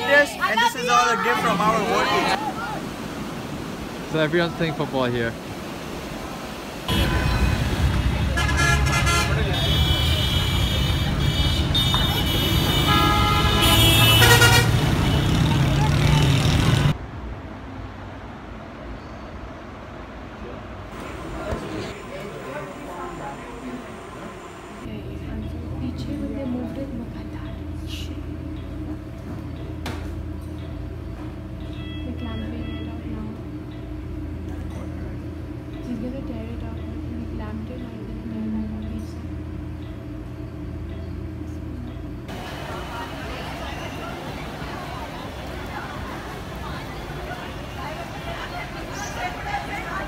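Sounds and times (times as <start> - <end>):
faint surf: 0.0 - 28.5, 40.5 - 50.0
bus engine rumbling: 0.0 - 50.0
wind: 0.0 - 50.0
vehicle horns honking: 6.9 - 15.6, 31.6 - 33.3.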